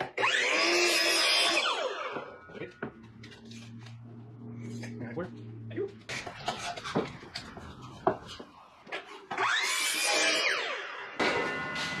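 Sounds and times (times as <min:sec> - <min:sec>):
miter saw cutting board: 0:09.3 - 0:12.0.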